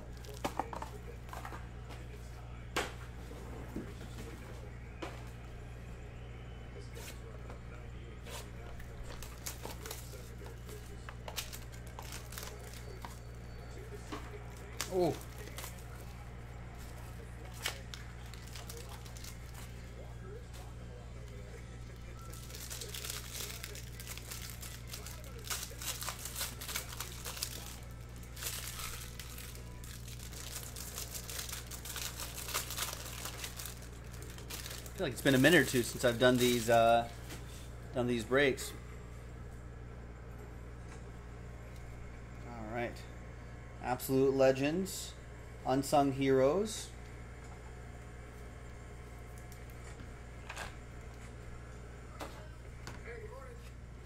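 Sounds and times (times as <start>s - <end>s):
steady low hum: 0.0s - 54.0s
plastic wrapping crinkling: 9.0s - 13.3s, 14.4s - 16.2s, 16.8s - 19.8s, 22.1s - 37.2s.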